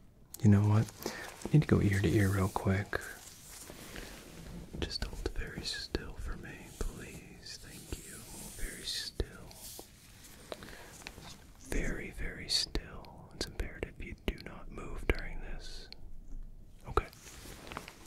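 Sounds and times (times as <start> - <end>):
soft whispering: 0.4 - 16.1, 16.8 - 18.0.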